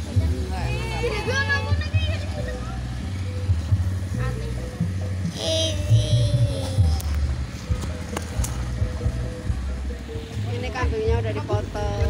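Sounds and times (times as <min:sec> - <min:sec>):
heavy bass beat: 0:00.0 - 0:12.0
voices: 0:00.0 - 0:12.0.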